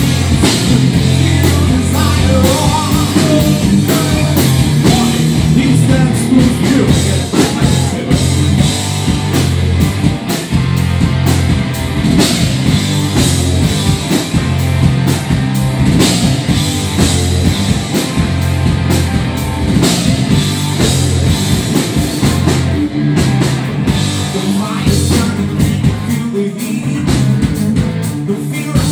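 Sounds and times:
bass guitar: 0:00.0 - 0:28.9
distorted electric guitars: 0:00.0 - 0:28.9
drum kit beat: 0:00.0 - 0:28.9.

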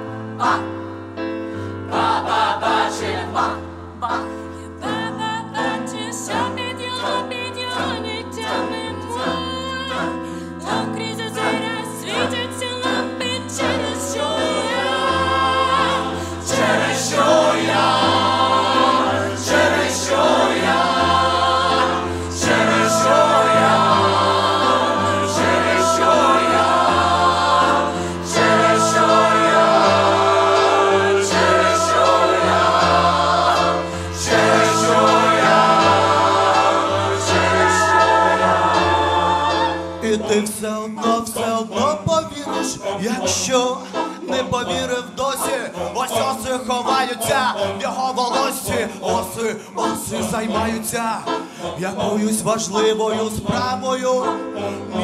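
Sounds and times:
keyboard accompaniment: 0:00.0 - 0:55.0
mixed choir singing: 0:00.0 - 0:55.0.

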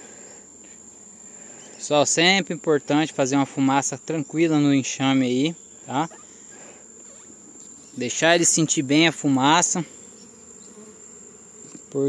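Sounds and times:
high-pitched insect trill: 0:00.0 - 0:12.0
honeybees buzzing: 0:00.0 - 0:12.0.

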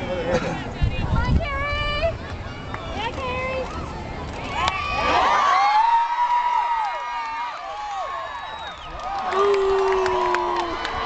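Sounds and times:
crowd cheering and screaming: 0:03.8 - 0:11.0.

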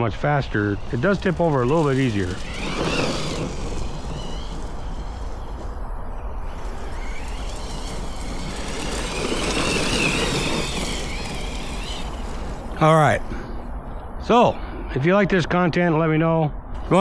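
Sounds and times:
rc truck motor whining: 0:00.0 - 0:13.4, 0:16.8 - 0:17.0.

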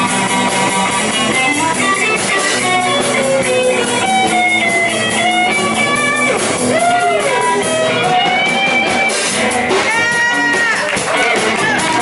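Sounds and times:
bass guitar: 0:00.0 - 0:12.0
drum kit: 0:00.0 - 0:12.0
lead electric guitar melody: 0:00.0 - 0:12.0
rhythm guitars: 0:00.0 - 0:12.0.

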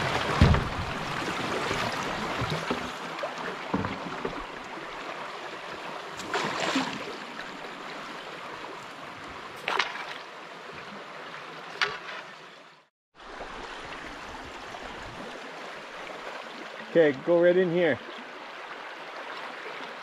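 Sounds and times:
brook water rushing over riffles: 0:00.0 - 0:12.4.

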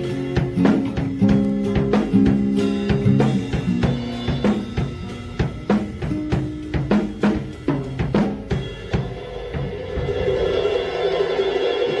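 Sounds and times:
drum kit and acoustic guitar: 0:00.0 - 0:12.0.

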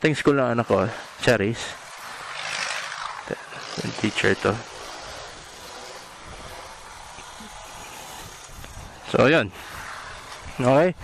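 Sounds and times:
wind and road noise hiss: 0:00.0 - 0:11.0.

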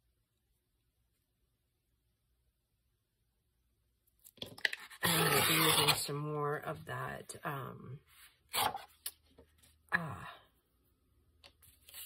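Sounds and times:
paper rustling: 0:11.4 - 0:12.0.

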